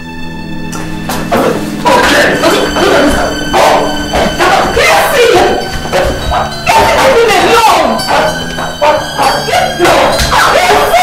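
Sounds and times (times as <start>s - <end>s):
people shouting in a fight: 1.3s - 11.0s.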